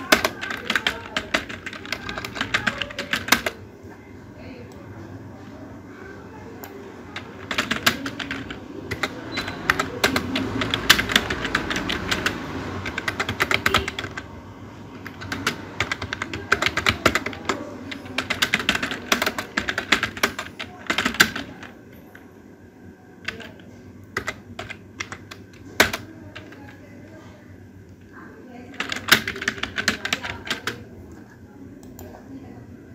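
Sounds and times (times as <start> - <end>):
computer keyboard typing: 0.0 - 3.6, 6.6 - 21.8, 23.2 - 26.8, 28.7 - 30.9.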